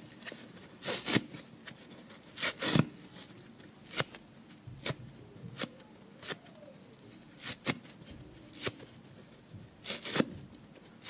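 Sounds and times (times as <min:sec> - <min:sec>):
sponge foam ripping: 0:00.8 - 0:01.4, 0:02.3 - 0:02.9, 0:09.8 - 0:10.3.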